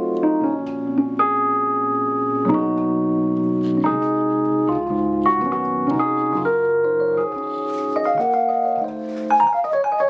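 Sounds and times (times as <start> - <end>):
sustained organ-like keyboard chords: 0.0 - 9.9.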